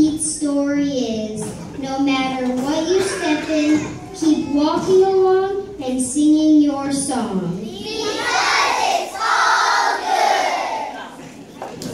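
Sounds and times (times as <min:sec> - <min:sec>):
children shouting in unison: 0:07.7 - 0:11.0.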